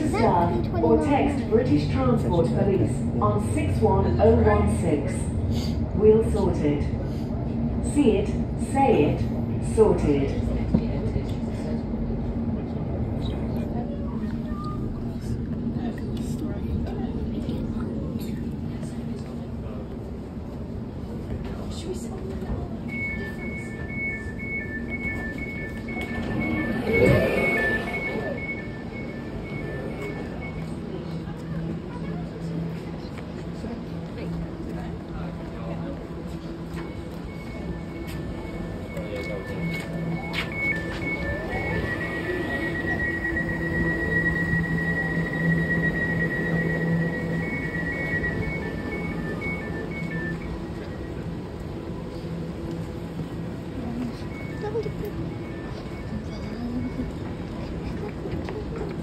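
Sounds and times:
indistinct voices: 21.4 - 59.0
high electronic beep: 22.9 - 30.7, 36.8 - 50.8.

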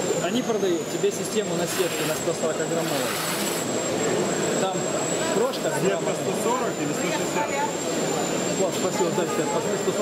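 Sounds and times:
people talking at once: 4.5 - 10.0.

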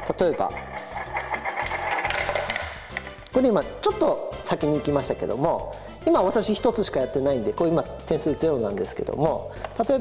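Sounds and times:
ball rolling in plastic funnel: 0.1 - 3.0.

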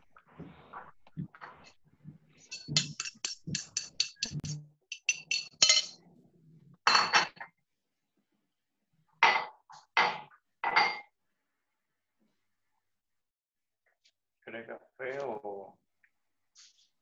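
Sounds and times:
spoon clinking in cup: 2.5 - 6.0.

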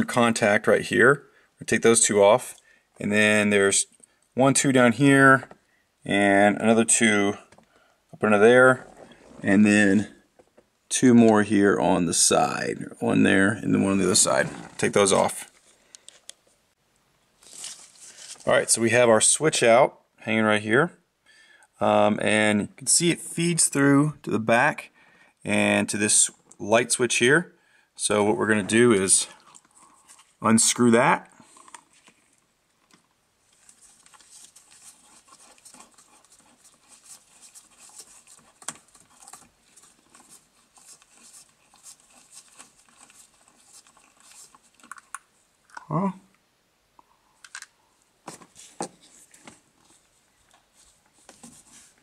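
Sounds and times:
soft handling rustling: 17.4 - 18.8, 31.4 - 44.9, 48.2 - 52.0
fingers scratching on nut: 33.8 - 45.1.

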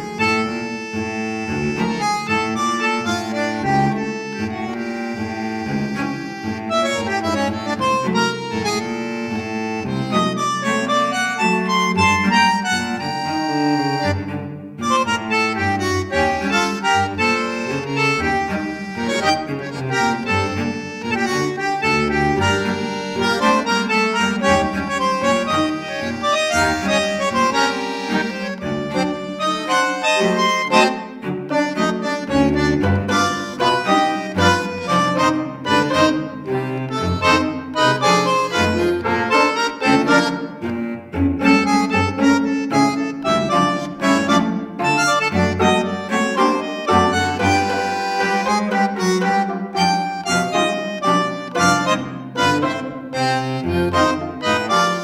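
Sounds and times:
instrumental background music: 0.0 - 55.0.

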